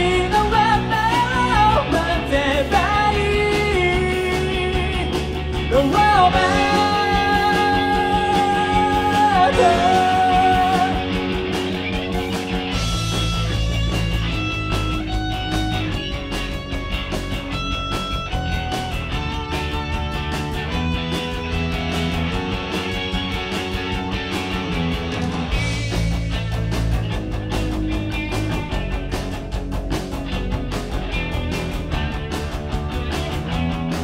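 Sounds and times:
bass: 0.0s - 34.0s
drums with cymbal hits: 0.0s - 34.0s
electric guitar melody: 0.0s - 34.0s.

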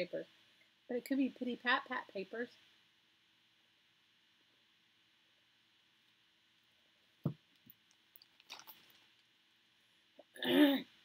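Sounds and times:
person clearing throat: 10.3s - 10.9s.

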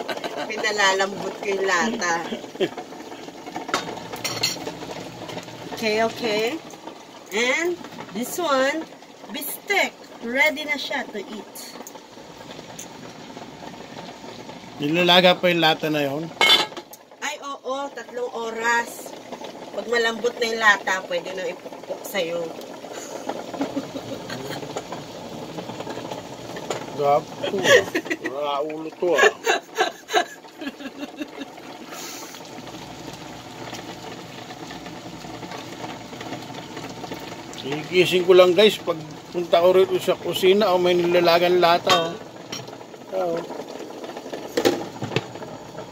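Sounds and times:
stew bubbling in a wok: 0.0s - 45.9s
water boiling in a pot: 0.0s - 45.9s
woman talking: 0.2s - 2.4s, 5.8s - 6.6s, 7.3s - 11.8s, 17.2s - 19.1s, 19.8s - 22.6s, 27.4s - 28.2s.

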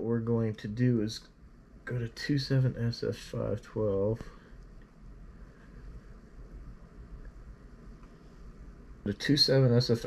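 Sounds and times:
low steady rumble with hiss: 0.0s - 10.0s.

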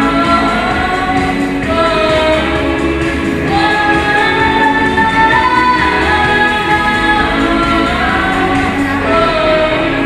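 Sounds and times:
girl singing into microphone: 0.0s - 10.0s
instrumental accompaniment: 0.0s - 10.0s.

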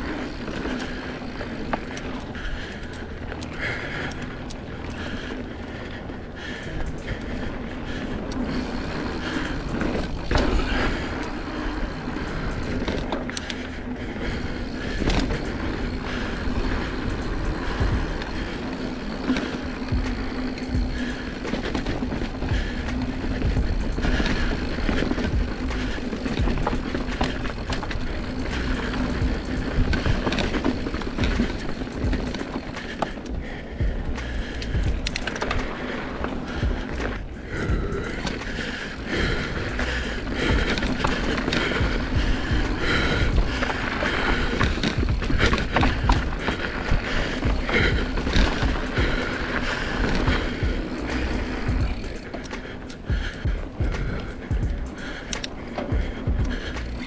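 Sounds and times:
bike rattling over bumps: 0.0s - 57.0s.

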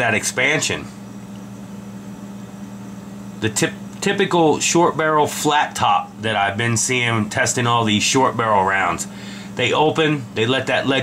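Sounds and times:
room background hiss: 0.0s - 11.0s
steady low hum: 0.0s - 11.0s.

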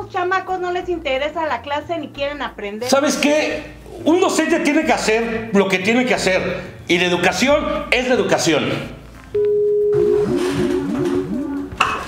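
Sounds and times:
short rising blips: 9.8s - 11.8s.

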